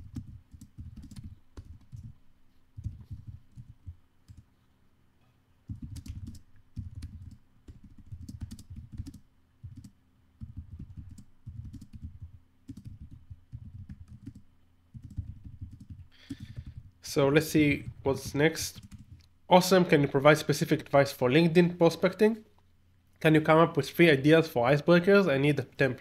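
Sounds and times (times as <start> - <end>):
typing on computer keyboard: 0.0 - 2.2, 2.8 - 4.4, 5.7 - 17.0, 18.7 - 19.2.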